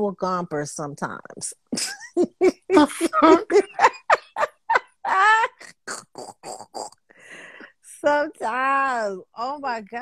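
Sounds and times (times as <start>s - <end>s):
hearty laughter: 1.8s - 5.7s.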